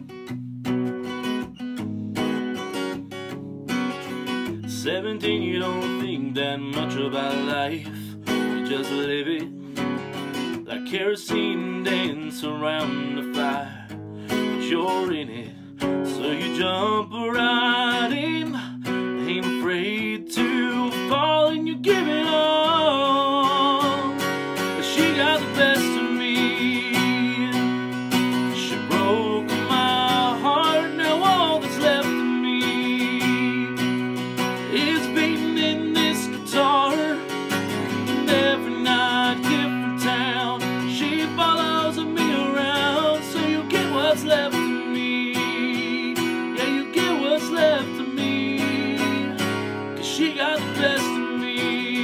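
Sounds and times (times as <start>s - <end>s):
acoustic guitar strumming: 0.0s - 52.0s
man singing country song: 3.8s - 52.0s.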